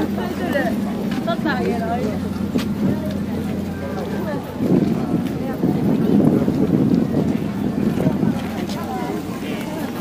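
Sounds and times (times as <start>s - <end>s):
voices of strolling crowd: 0.0s - 10.0s
wind buffeting microphone: 0.0s - 10.0s.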